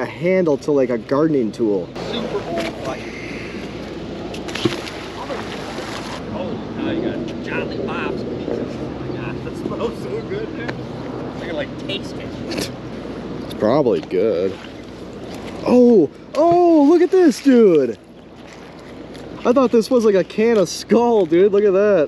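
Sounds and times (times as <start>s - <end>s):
outdoor background noise: 0.0s - 22.0s.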